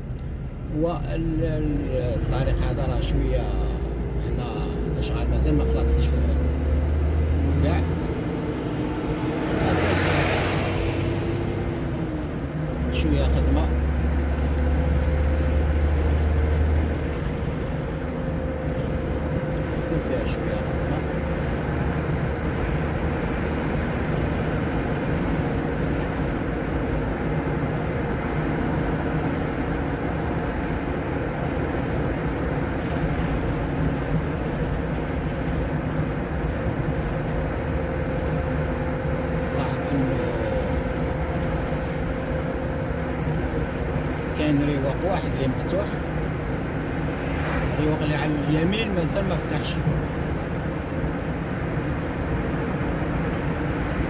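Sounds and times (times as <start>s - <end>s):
low engine hum: 0.0s - 54.0s
tyre and road noise: 0.0s - 54.0s.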